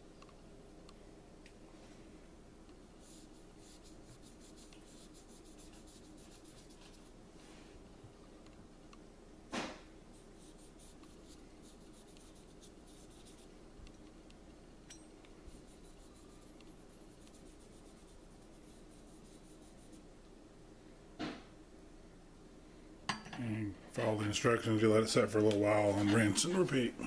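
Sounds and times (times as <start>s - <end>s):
cotton swab rubbing on metal: 3.0s - 7.2s, 10.1s - 13.5s, 15.5s - 20.1s.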